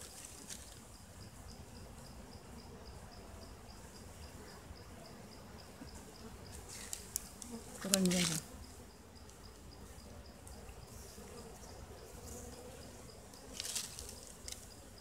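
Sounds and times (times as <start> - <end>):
bees humming: 0.0 - 15.0
insect chirping: 0.0 - 15.0
hive handling clicks: 6.6 - 8.4.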